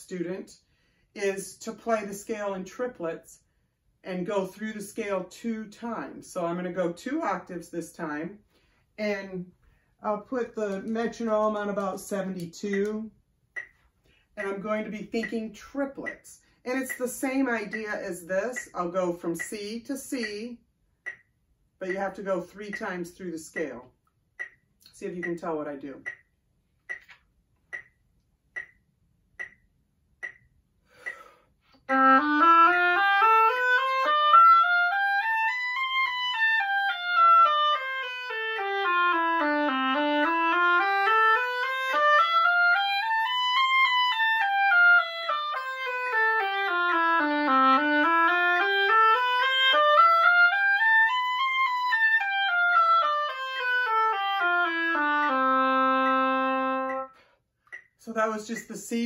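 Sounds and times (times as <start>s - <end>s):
metronome ticking: 11.7s - 13.8s, 14.4s - 23.8s, 24.4s - 32.0s, 56.0s - 57.1s, 57.7s - 58.8s
oboe playing a scale: 31.8s - 57.1s.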